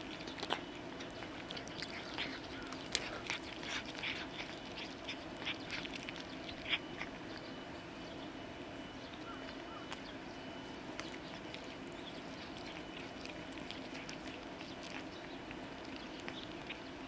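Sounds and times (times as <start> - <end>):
cats chewing with wet smacking: 0.0 - 17.0.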